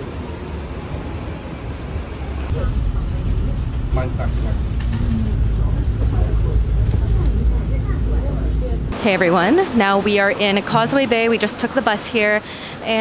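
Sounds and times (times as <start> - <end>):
bus engine rumbling: 0.0 - 10.0.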